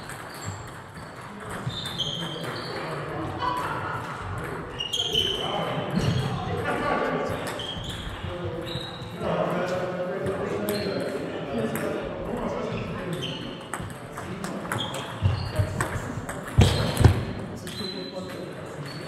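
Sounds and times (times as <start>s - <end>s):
voices talking in a hall: 0.0s - 19.0s.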